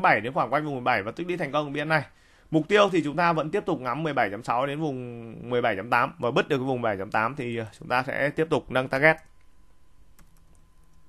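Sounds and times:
person speaking: 0:00.0 - 0:09.4.

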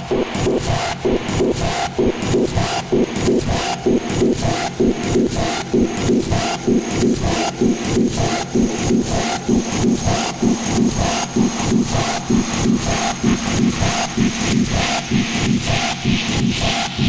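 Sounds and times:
distorted techno synth pulsing: 0:00.0 - 0:17.0.

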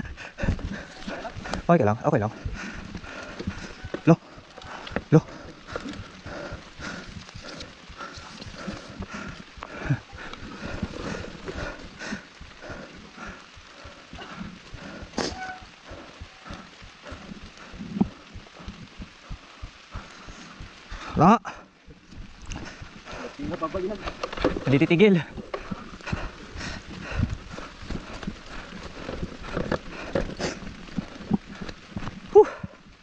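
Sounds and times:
footsteps on wet dirt: 0:00.4 - 0:32.8.

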